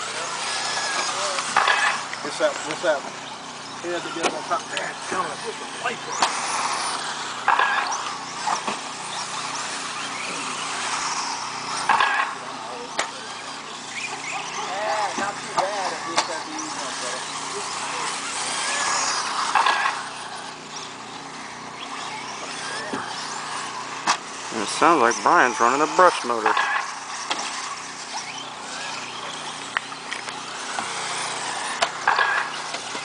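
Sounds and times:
rc car motor whine: 0.0s - 33.0s.

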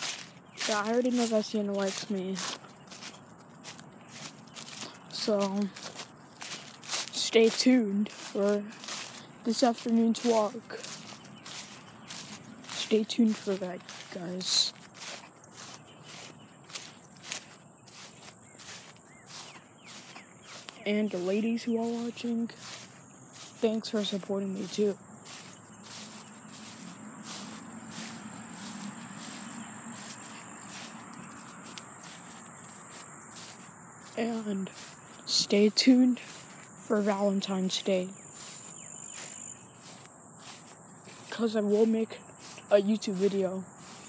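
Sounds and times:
footsteps on grass and leaves: 0.0s - 44.0s
insects trilling: 0.0s - 44.0s.

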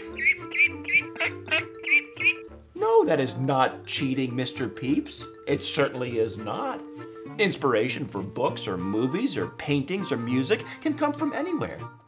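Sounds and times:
duckling peeping: 0.0s - 2.5s
soft background music: 0.0s - 12.0s.

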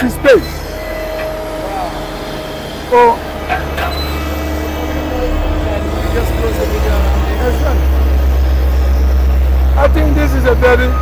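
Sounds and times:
diesel engine droning: 0.0s - 11.0s.

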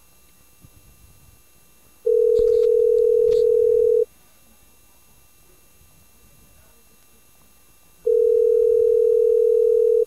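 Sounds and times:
telephone ringback tone: 2.1s - 4.1s, 8.0s - 10.0s.

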